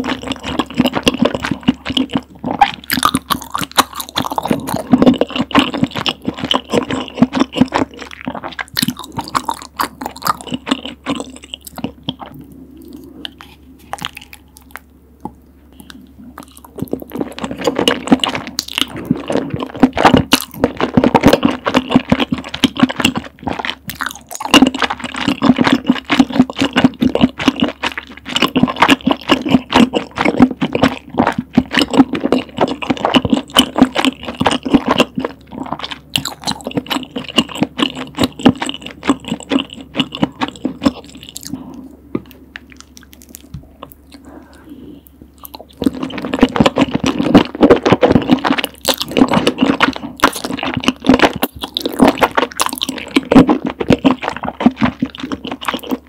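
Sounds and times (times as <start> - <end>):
wet chewing: 0.0 - 56.0.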